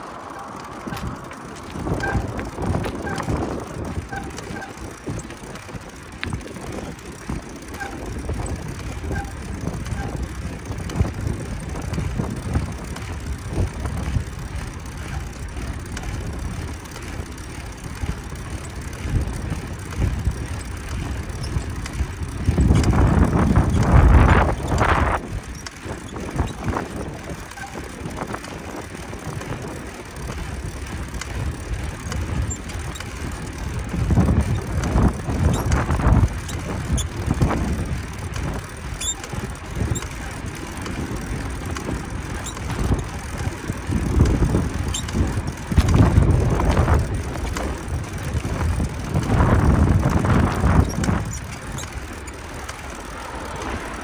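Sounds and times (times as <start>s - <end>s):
bicycle tyres on pavement: 0.0s - 54.0s
wind on microphone: 0.0s - 54.0s.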